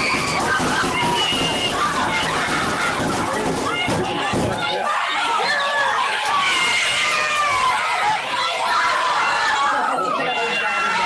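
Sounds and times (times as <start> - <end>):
children's excited voices: 0.0 - 11.0
classroom commotion: 0.0 - 11.0.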